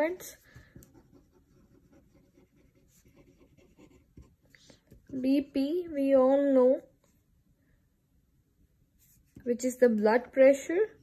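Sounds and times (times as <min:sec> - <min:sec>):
pen scratching on paper: 0:00.1 - 0:05.5.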